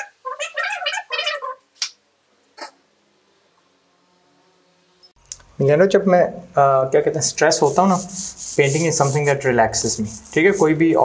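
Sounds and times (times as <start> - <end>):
cat meowing: 0.0 - 1.6.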